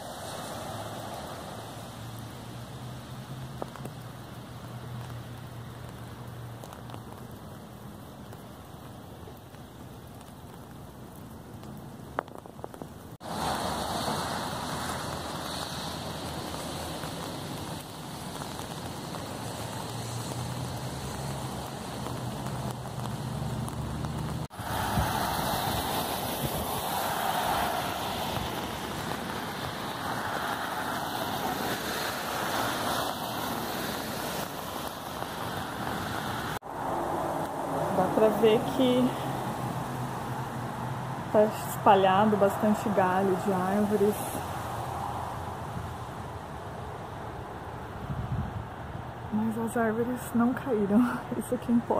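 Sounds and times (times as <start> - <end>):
rain hissing on wet pavement: 0.0 - 51.9.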